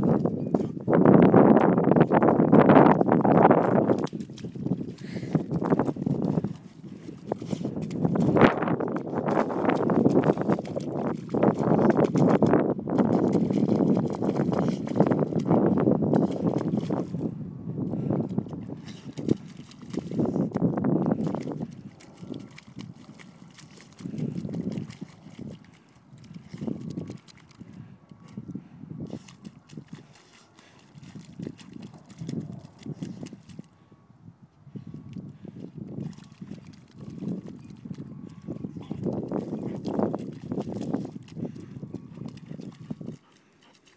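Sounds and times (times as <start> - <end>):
dog digging in wet mud: 3.5 - 17.2, 18.7 - 28.4, 29.0 - 33.6, 35.9 - 43.9.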